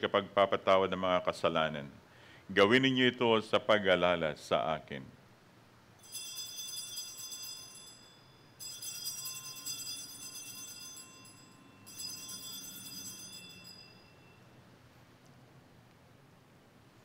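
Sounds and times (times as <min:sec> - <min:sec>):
altar bells jingling: 0:06.0 - 0:14.5.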